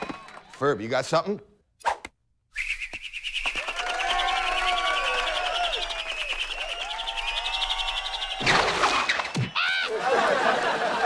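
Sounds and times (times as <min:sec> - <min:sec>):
sliding whistle-like tones: 0:02.5 - 0:09.7.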